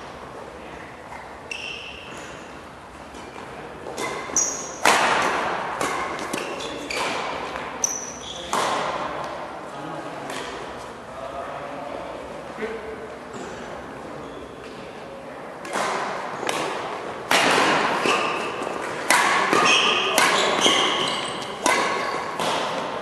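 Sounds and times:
shoes squeaking on court: 1.1 - 4.9, 5.8 - 8.9, 18.0 - 23.0
rackets hitting shuttlecock: 3.1 - 9.4, 15.6 - 23.0.

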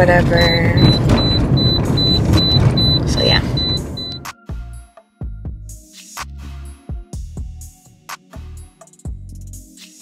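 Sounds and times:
car rumble: 0.0 - 4.2
car chime beeping: 0.1 - 4.3
soft music with pulsing beat: 3.6 - 10.0.

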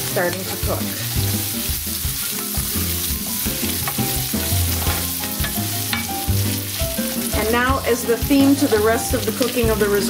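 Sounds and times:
rice and onion sizzling in oil: 0.0 - 10.0.

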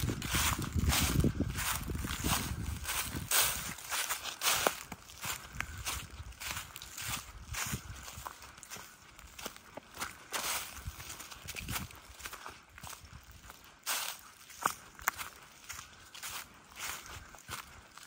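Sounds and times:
footsteps through dry leaves: 0.0 - 18.0.

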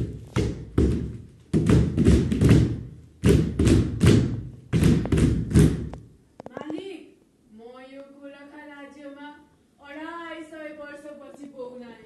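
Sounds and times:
bare feet stamping on stage: 0.0 - 6.1.

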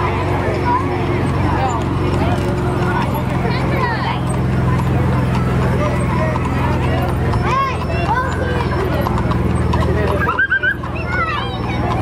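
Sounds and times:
crowd voices: 0.0 - 12.0
horse hooves clip-clopping on asphalt: 0.5 - 12.0.

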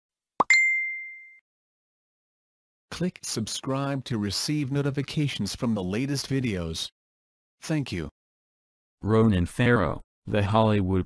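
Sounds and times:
bright ding: 0.4 - 1.4.

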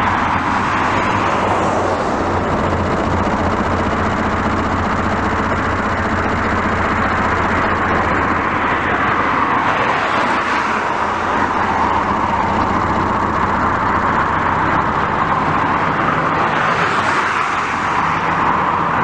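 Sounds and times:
cars driving along street: 0.0 - 19.0.

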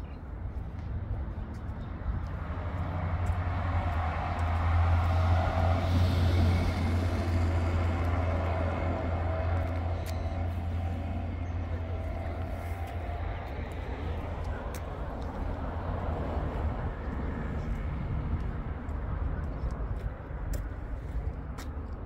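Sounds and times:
low rumble of motor traffic: 0.0 - 22.0.

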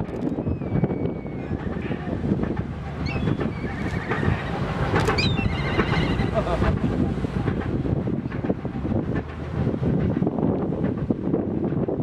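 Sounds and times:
wind rumble on microphone: 0.0 - 12.0
high warbling whistles: 0.3 - 1.8, 3.0 - 4.5, 5.2 - 6.3.

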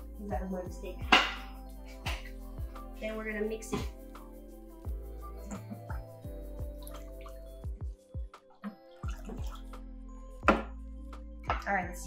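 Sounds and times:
background music: 0.0 - 12.0
water sloshing and dripping: 5.4 - 7.8, 8.4 - 9.8.

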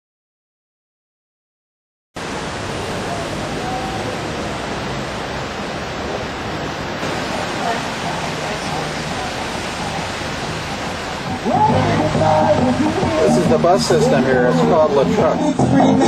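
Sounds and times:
air on microphone: 2.2 - 16.0
rushing traffic noise: 2.2 - 16.0
faint voices: 2.4 - 5.2, 7.1 - 16.0.

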